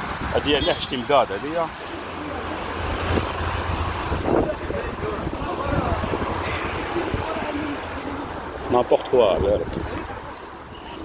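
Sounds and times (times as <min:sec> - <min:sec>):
tyres hissing on wet road: 0:00.0 - 0:11.0
wind rumbling on microphone: 0:02.6 - 0:11.0.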